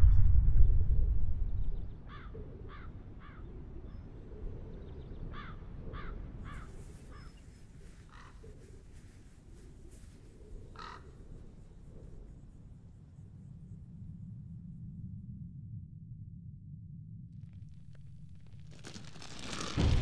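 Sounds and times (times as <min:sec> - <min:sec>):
low steady rumble: 0:00.0 - 0:03.9, 0:11.5 - 0:20.0.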